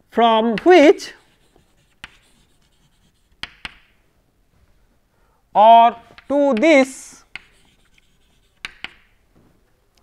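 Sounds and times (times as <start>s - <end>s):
chalk tapping on a blackboard: 0.5s - 4.0s, 6.0s - 9.2s.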